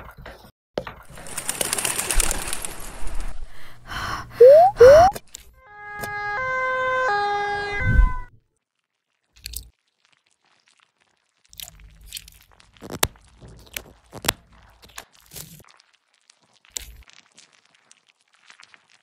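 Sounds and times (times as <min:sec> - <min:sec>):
two-tone ambulance siren: 0:05.7 - 0:08.3.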